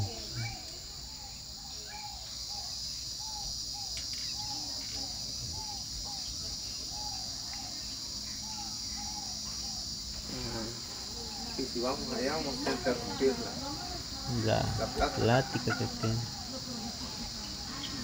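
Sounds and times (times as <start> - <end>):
bird calling: 0.0 - 18.0
high-pitched insect drone: 0.0 - 18.0.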